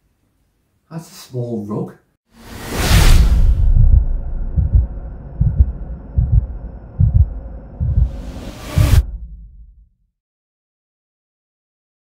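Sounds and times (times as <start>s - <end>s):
heartbeat double thumps: 3.5s - 9.9s
low steady hum: 3.7s - 8.4s.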